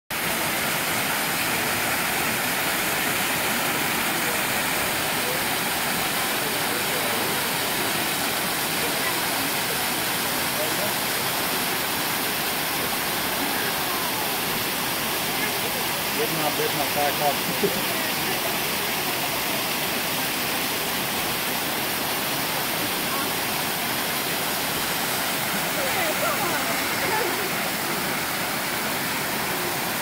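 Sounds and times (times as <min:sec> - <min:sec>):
water rushing over rocks: 0:00.1 - 0:30.0.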